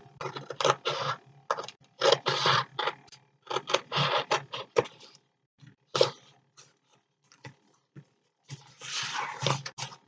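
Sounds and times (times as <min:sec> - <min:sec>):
paper rustling: 0:08.4 - 0:10.0.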